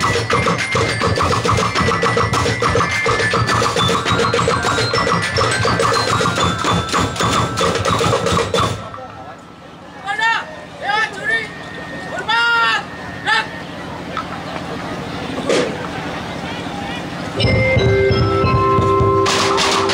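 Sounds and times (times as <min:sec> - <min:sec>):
ringing pitched notes: 0:00.0 - 0:14.3, 0:17.4 - 0:19.9
percussion band playing fast rhythm: 0:00.0 - 0:15.8, 0:17.0 - 0:19.9.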